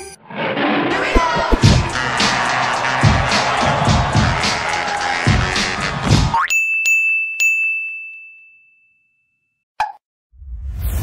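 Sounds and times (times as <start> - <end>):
rising sweep: 0.2 - 4.0
low rushing whoosh: 0.9 - 2.2
music: 1.2 - 6.4
sharp high dings: 6.4 - 9.5.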